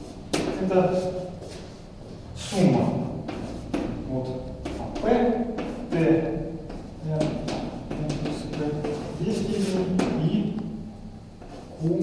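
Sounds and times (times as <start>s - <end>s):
person lecturing: 0.4s - 1.4s, 2.4s - 3.2s, 4.0s - 10.9s, 11.7s - 12.0s.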